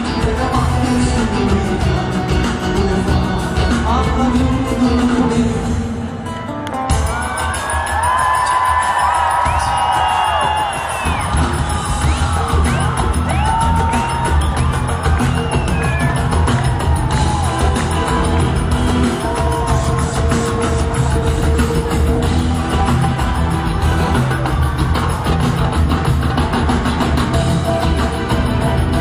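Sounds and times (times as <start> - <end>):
crowd screaming and cheering: 0.0 - 29.0
live pop music with heavy bass: 0.0 - 29.0.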